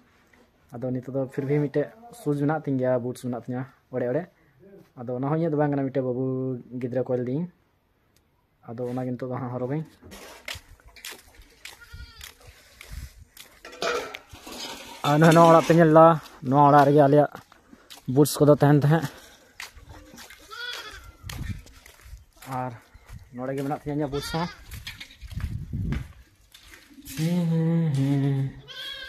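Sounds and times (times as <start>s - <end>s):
goat bleating: 11.6s - 12.4s, 19.9s - 21.3s, 24.0s - 24.8s, 28.4s - 29.0s.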